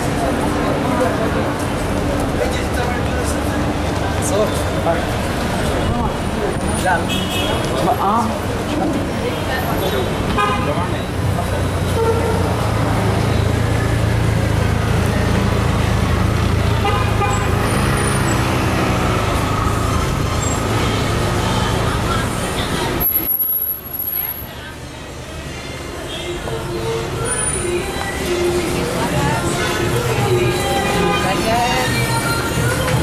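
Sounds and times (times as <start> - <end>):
car engines humming: 0.0 - 33.0
passers-by talking: 0.0 - 33.0
car horn toots: 16.8 - 17.7.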